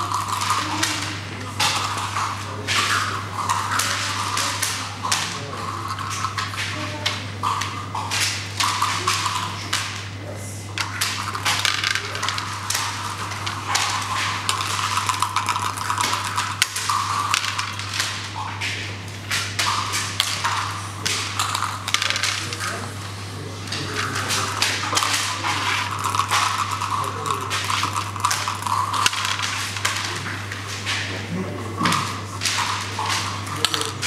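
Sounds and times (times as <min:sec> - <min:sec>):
checkers clacking on wooden board: 0:10.8 - 0:22.8, 0:23.8 - 0:31.1, 0:31.8 - 0:34.0.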